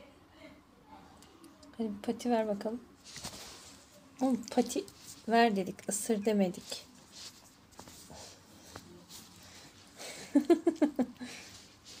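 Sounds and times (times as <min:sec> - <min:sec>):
faint rustling: 0:03.0 - 0:12.0
person laughing: 0:10.0 - 0:11.5.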